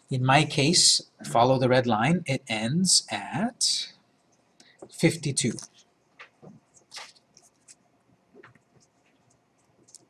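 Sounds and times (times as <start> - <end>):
computer keys clicking: 8.4 - 10.0.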